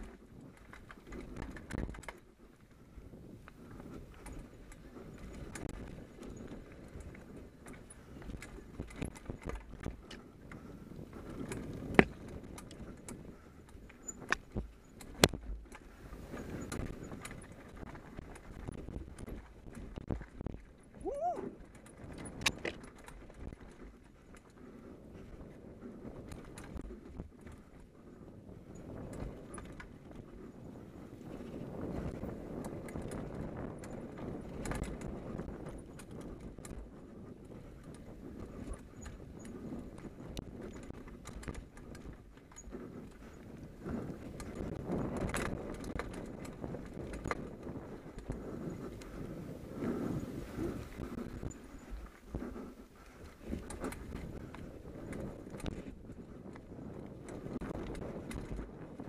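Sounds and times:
chain and frame rattling: 0:00.0 - 0:02.3, 0:03.7 - 0:27.8, 0:28.6 - 0:59.0
bike tyres rumbling on dirt: 0:00.0 - 0:59.0.

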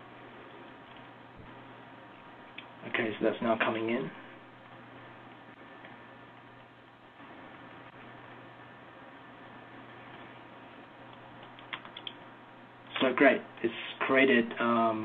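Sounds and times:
quick clicks: 0:11.1 - 0:12.2.

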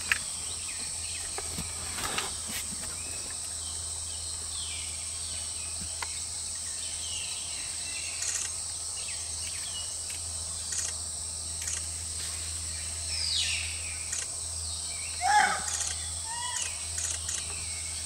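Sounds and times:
high-pitched insect drone: 0:03.0 - 0:18.0
short bird calls: 0:15.1 - 0:17.4.

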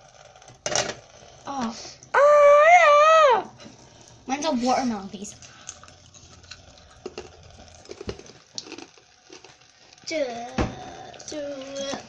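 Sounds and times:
tap water trickling onto ice: 0:04.0 - 0:12.0.

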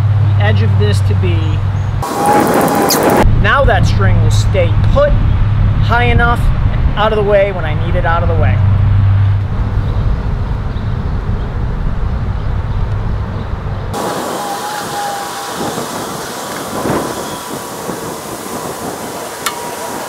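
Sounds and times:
low rumble: 0:01.2 - 0:19.2
steady hiss: 0:14.0 - 0:20.0.

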